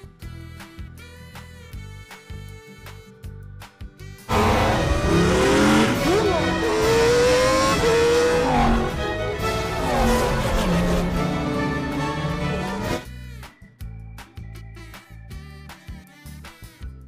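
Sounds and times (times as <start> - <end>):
music: 0.0 - 17.0
race car engines revving past: 4.3 - 13.0.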